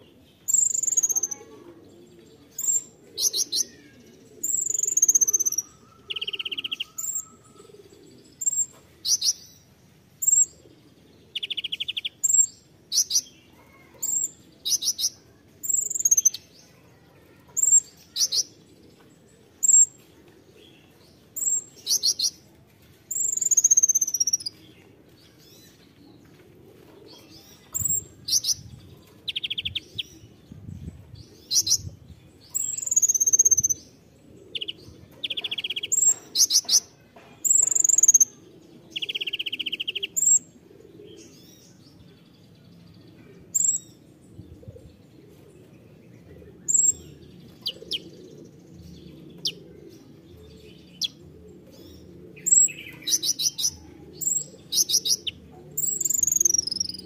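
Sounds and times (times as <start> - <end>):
sunbird singing: 0.0 - 1.5, 2.5 - 9.5, 10.2 - 16.8, 32.5 - 36.9, 39.0 - 40.5, 46.6 - 49.8, 50.4 - 57.0.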